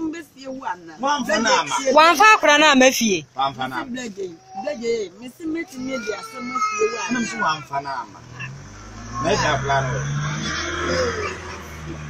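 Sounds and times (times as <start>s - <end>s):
vehicle engine humming: 0.0s - 12.0s
voices: 0.0s - 12.0s.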